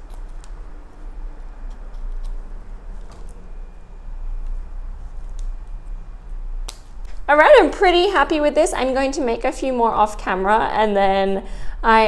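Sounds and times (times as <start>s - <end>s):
scissors snipping: 0.0s - 0.6s, 1.6s - 3.4s
steady low hum: 0.0s - 12.0s.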